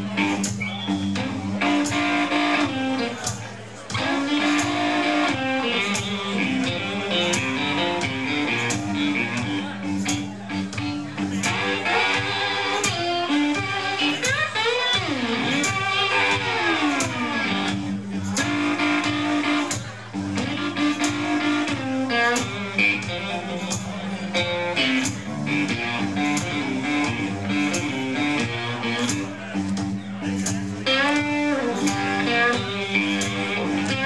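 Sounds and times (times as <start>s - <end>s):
lead guitar bent notes: 0.0s - 34.0s
live blues band playing: 0.0s - 34.0s.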